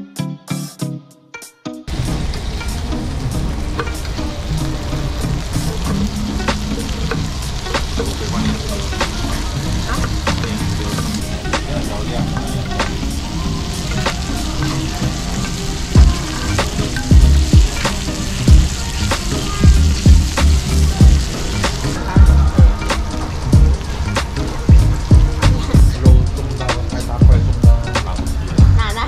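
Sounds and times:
meat sizzling on a griddle: 1.9 - 27.4
music with thumping bass beat: 16.0 - 29.0.

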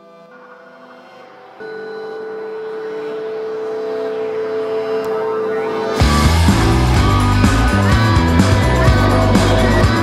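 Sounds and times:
rushing drone: 1.0 - 10.0.

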